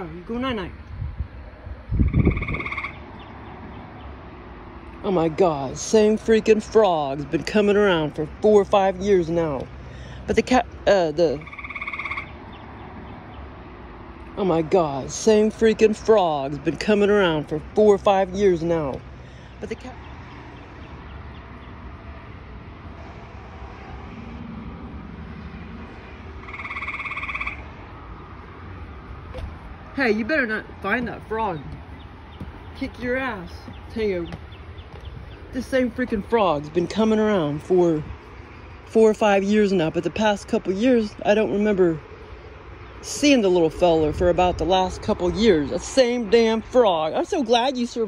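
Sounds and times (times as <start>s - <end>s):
frog trill call: 2.0s - 3.2s, 11.3s - 12.4s, 26.4s - 27.8s
low thump: 29.3s - 29.7s.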